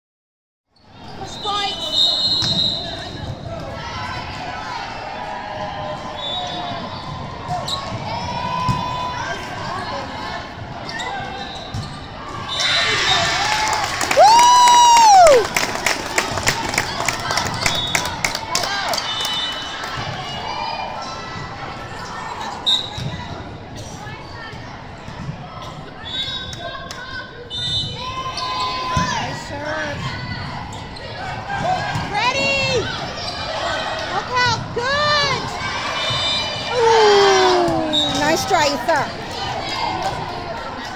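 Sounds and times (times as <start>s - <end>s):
voices in a hall: 0.8s - 40.9s
sneakers squeaking on court: 10.9s - 12.2s.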